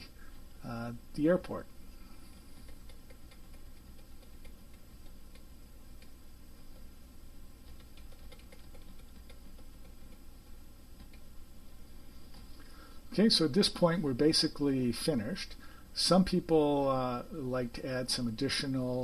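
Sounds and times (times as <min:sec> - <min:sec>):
low steady hum: 0:00.0 - 0:19.0
computer mouse clicking: 0:02.5 - 0:06.9, 0:07.6 - 0:11.3.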